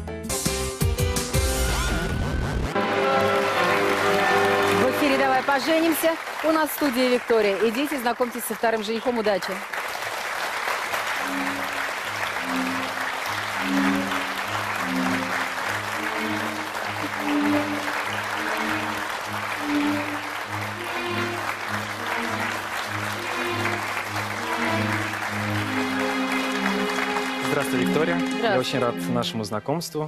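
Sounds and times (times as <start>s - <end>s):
audience applauding: 2.7s - 29.5s.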